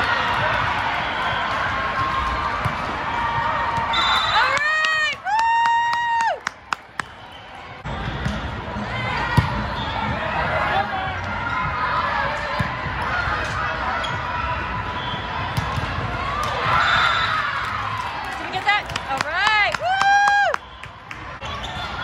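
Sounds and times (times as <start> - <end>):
volleyball strike: 15.5 - 16.8.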